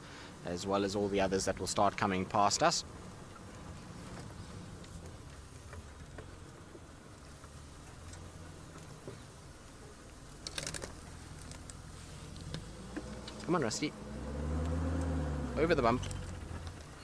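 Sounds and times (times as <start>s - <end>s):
vehicle engine low hum: 0.1s - 17.0s.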